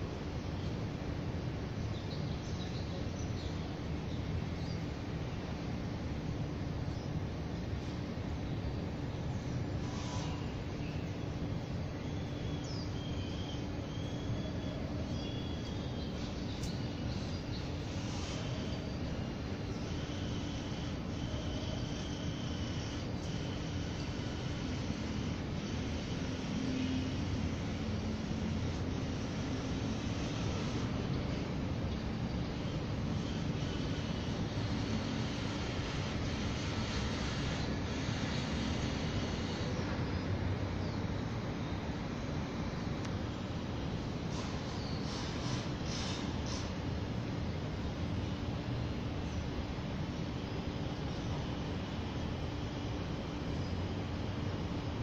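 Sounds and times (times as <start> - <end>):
city background rumble: 0.0 - 55.0.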